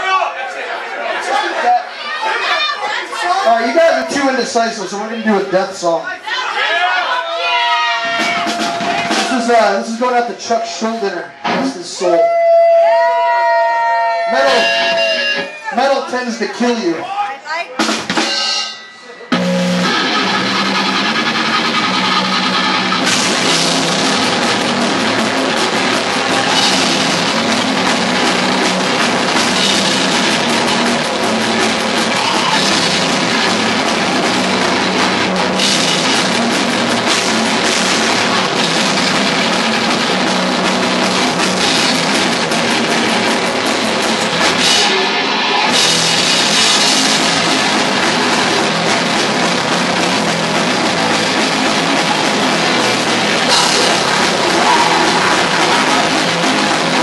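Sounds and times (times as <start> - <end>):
death metal band playing: 7.4 - 57.0.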